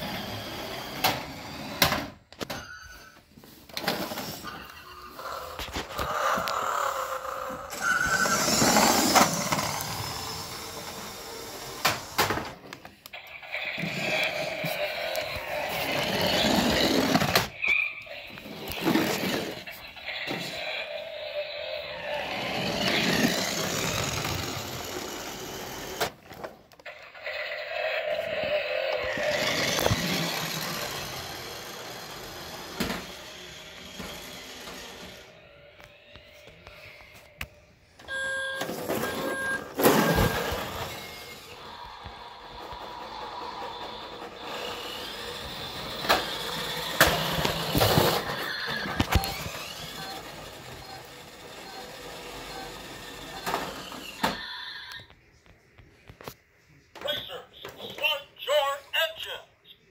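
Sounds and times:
toy car engine sound effects: 0.0s - 1.9s, 4.0s - 26.2s, 26.8s - 37.3s, 38.0s - 55.1s.

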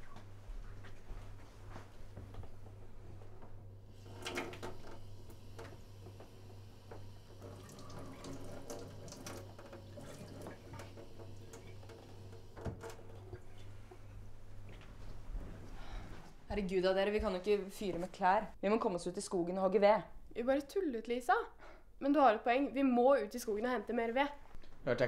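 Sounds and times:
tap water trickling into sink: 4.0s - 13.8s.

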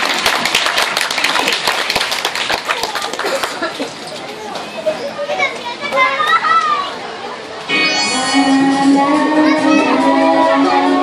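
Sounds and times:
crowd murmur: 0.0s - 11.0s
children chattering and calling out: 2.6s - 11.0s.

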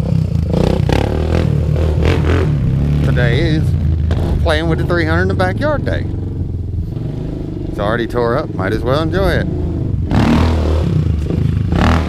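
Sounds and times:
atv engine running at low revs: 0.0s - 12.0s.

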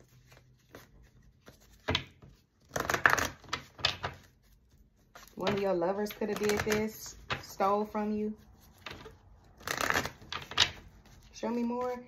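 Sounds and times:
cards shuffled by hand: 0.0s - 7.6s, 8.3s - 12.0s.

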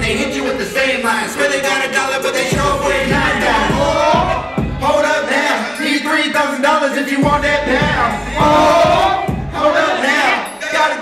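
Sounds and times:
beat with deep bass: 0.0s - 0.8s, 2.2s - 5.0s, 7.2s - 9.7s
people rapping into microphones: 0.0s - 11.0s.

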